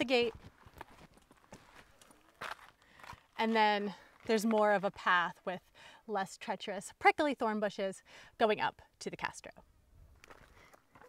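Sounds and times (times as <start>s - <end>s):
footsteps on trail: 0.0s - 5.6s, 10.2s - 11.0s.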